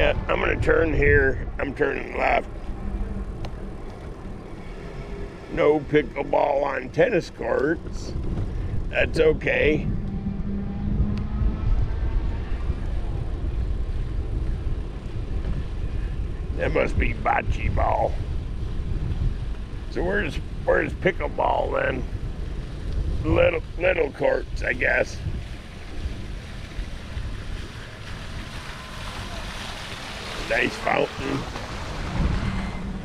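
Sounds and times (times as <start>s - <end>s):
bicycle tyre rumble: 0.0s - 33.0s
wind buffeting microphone: 0.0s - 33.0s
brief hum: 9.9s - 13.3s.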